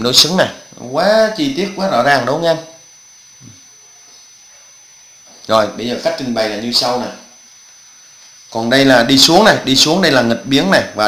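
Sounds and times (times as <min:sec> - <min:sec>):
faint recording hiss: 0:00.0 - 0:11.0
thin high whine: 0:00.0 - 0:11.0.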